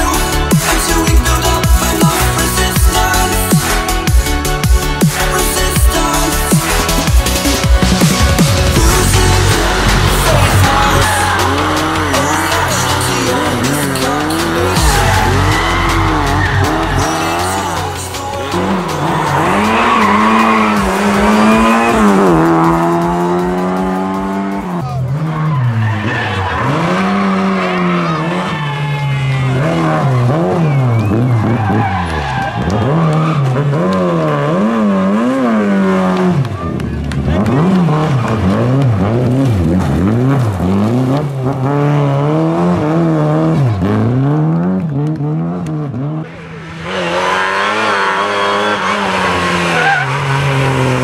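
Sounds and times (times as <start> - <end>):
rally car engines revving: 0.0 - 51.0
tyres skidding on gravel: 7.4 - 51.0.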